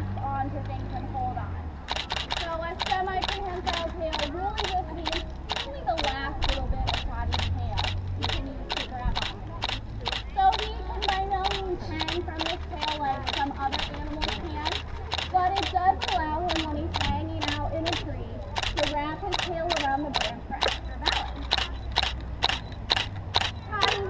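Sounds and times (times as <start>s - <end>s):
sharp clicks: 1.8s - 24.0s.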